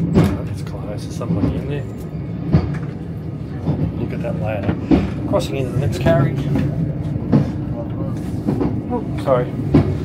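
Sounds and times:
railway carriage hum and rumble: 0:00.0 - 0:10.0.

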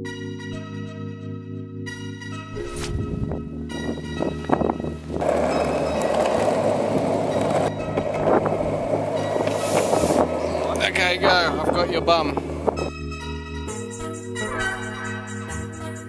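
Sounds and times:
background music: 0:00.0 - 0:16.0
plastic wheels rolling on asphalt: 0:04.4 - 0:12.8.

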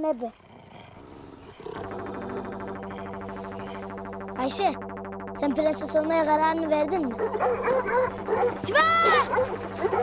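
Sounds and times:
pulsing synthesizer drone: 0:00.9 - 0:10.0.

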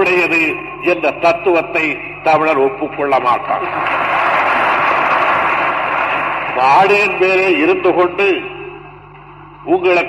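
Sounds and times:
crowd applauding and cheering: 0:03.5 - 0:07.6.

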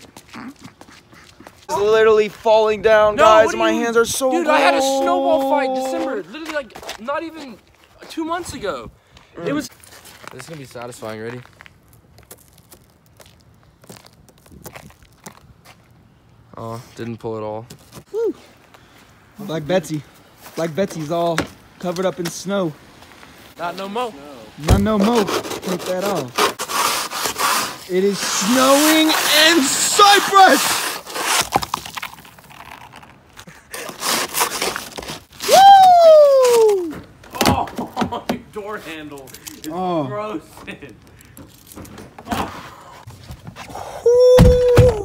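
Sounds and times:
person crying out: 0:04.2 - 0:06.3, 0:18.1 - 0:18.4, 0:35.5 - 0:37.7, 0:44.0 - 0:45.0
hand scraping snow off car: 0:24.6 - 0:31.6.

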